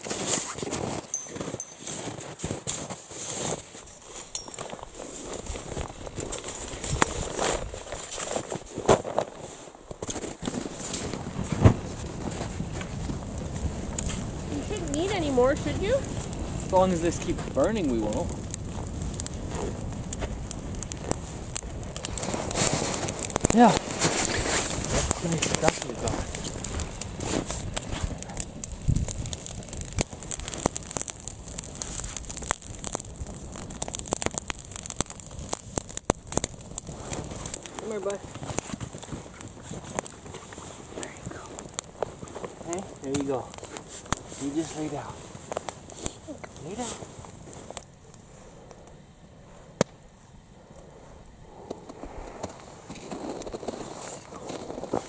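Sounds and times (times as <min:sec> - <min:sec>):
campfire crackling and popping: 0:00.0 - 0:55.0.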